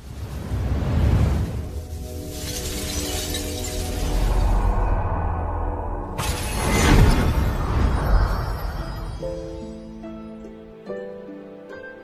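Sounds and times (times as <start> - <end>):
glass shattering effect: 2.3 - 4.4, 6.2 - 9.1.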